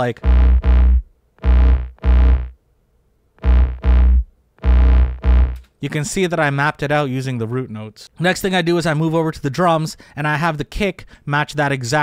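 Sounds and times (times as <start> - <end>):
choppy synth stabs with heavy bass: 0.2 - 2.5, 3.4 - 5.6.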